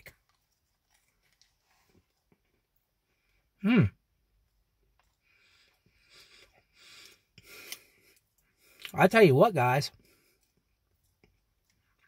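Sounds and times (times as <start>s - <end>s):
chewing food: 0.0s - 2.8s, 4.8s - 8.9s, 10.0s - 12.0s.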